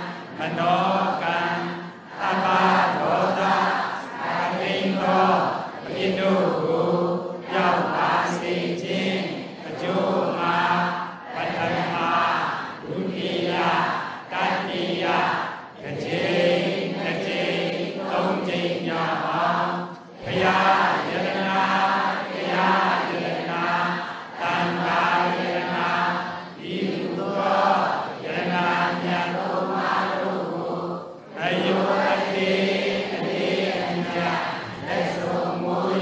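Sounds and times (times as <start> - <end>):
group chanting in unison: 0.0 - 36.0.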